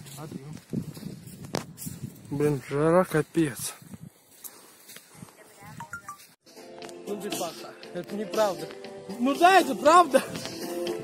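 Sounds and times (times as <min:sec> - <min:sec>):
background music: 0:05.8 - 0:11.0.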